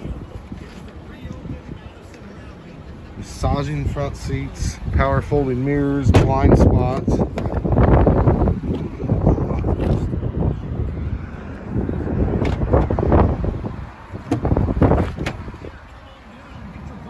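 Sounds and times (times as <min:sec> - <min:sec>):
wind buffeting microphone: 0:03.4 - 0:15.9
car door clicks: 0:12.4 - 0:13.0, 0:14.2 - 0:15.5.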